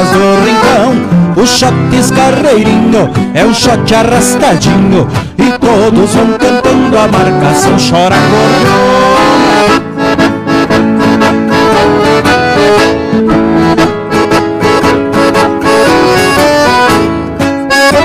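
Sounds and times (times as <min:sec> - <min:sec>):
accordion melody: 0:00.0 - 0:18.0
rhythmic accompaniment: 0:00.0 - 0:18.0.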